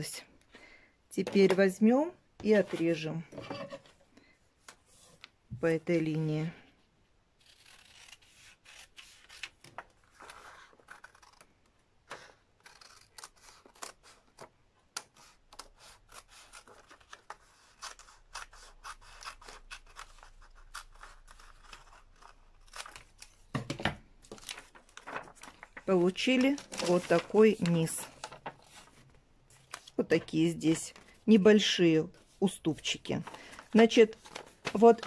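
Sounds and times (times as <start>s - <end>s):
scissors snipping paper: 7.4s - 9.6s, 12.2s - 23.3s
paper rustling: 19.9s - 31.2s, 32.2s - 35.0s.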